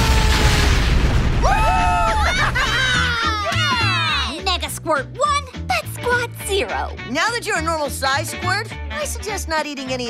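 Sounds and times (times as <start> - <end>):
boom with low rumble: 0.0 - 2.2
voices laughing: 2.0 - 4.0
cartoon music: 2.2 - 7.6.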